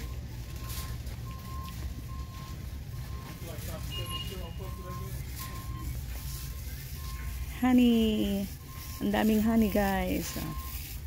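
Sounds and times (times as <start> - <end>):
electronic warning beeper: 0.0 - 11.0
store background rumble: 0.0 - 11.0.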